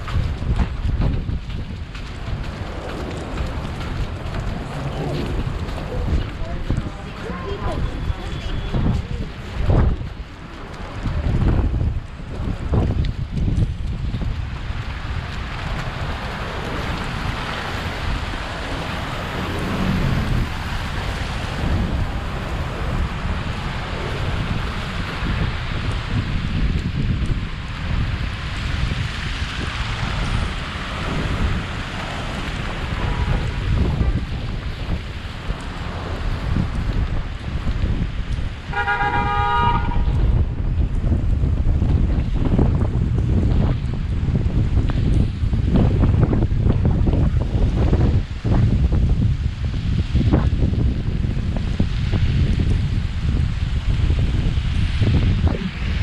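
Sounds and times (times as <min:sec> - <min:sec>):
city traffic: 0:00.0 - 0:56.0
wind rumbling on microphone: 0:00.0 - 0:56.0
car horn honking: 0:38.7 - 0:40.1.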